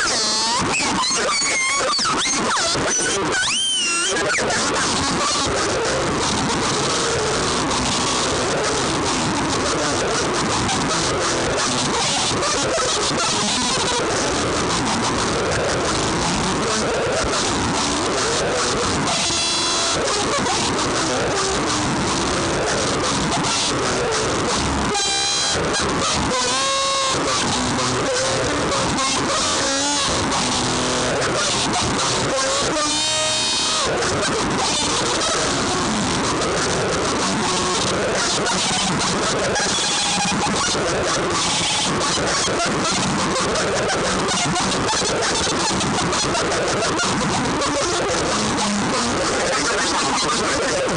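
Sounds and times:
distorted electric guitar noise: 0:00.0 - 0:50.9.

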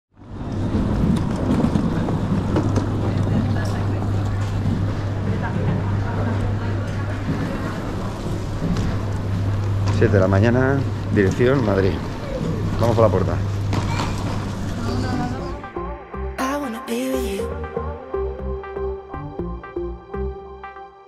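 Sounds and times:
steady low hum: 0:00.2 - 0:16.3
indistinct crowd chatter: 0:01.4 - 0:09.2.

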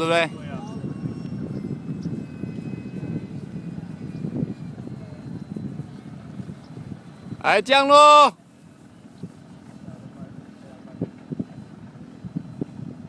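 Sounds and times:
model jet whine: 0:00.0 - 0:13.0
wind rumble on microphone: 0:00.0 - 0:13.0.

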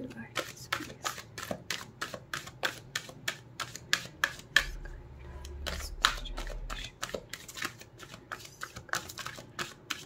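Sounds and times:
cards being shuffled: 0:05.6 - 0:10.0.

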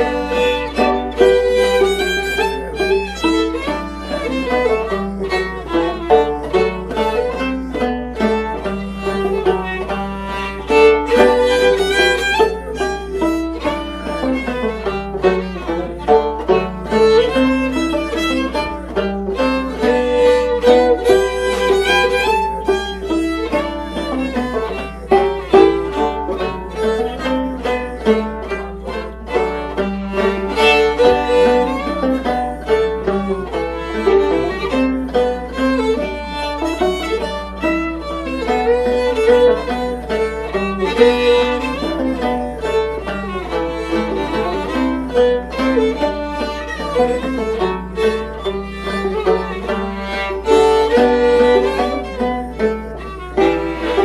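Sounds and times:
banjo picking: 0:00.0 - 0:54.0
fiddle bowing a melody: 0:00.0 - 0:54.0.

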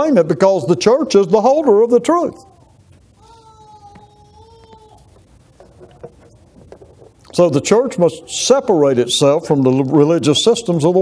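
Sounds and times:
faint rustles: 0:02.5 - 0:08.4.

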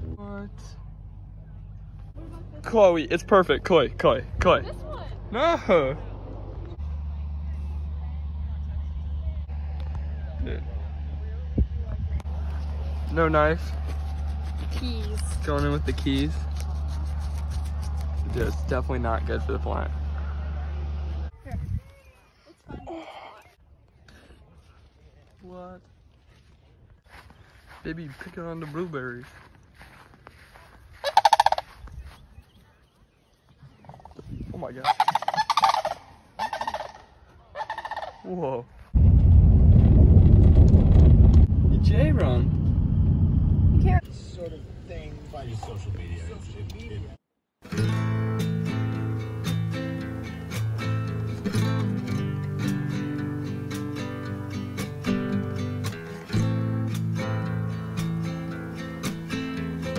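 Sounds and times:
steady low rumble: 0:00.0 - 0:22.0, 0:38.6 - 0:47.2
cranes calling: 0:30.9 - 0:32.0, 0:34.8 - 0:38.3.

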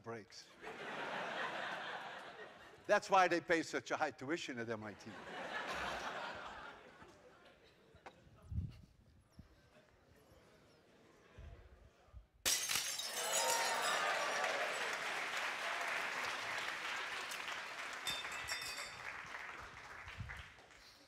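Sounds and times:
glass plate shattering: 0:12.4 - 0:14.4, 0:18.1 - 0:19.0
audience cheering and applause: 0:13.1 - 0:20.9.

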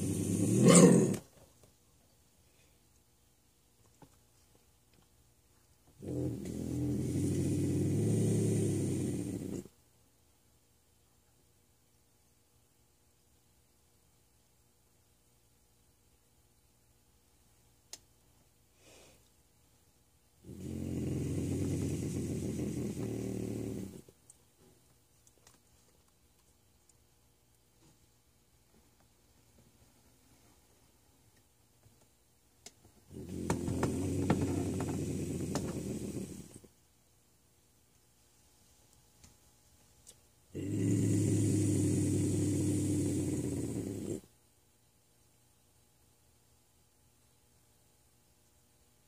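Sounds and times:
bobcat growling: 0:00.0 - 0:01.2, 0:06.0 - 0:09.7, 0:20.4 - 0:24.0, 0:33.1 - 0:36.6, 0:40.6 - 0:44.2.

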